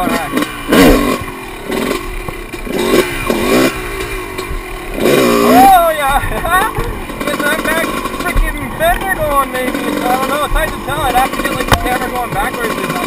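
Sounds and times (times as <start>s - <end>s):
dirt bike engine revving: 0.0s - 13.0s.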